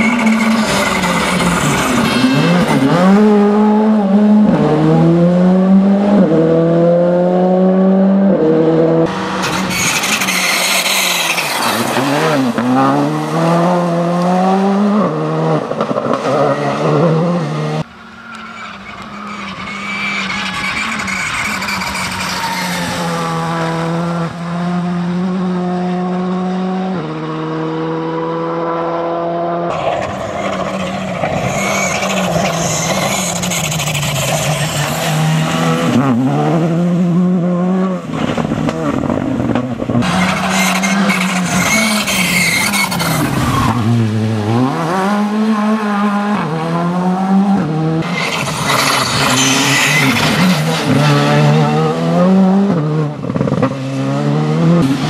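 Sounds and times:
rally car engine driven hard: 0:00.0 - 0:55.0.

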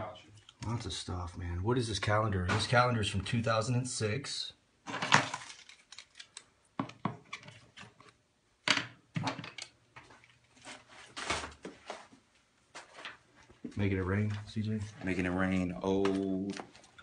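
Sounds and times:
paper and debris rustling: 0:04.9 - 0:06.4, 0:10.1 - 0:17.0.

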